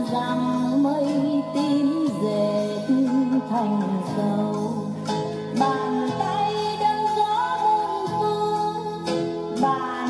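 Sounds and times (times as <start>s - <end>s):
song with singing voice: 0.0s - 10.0s.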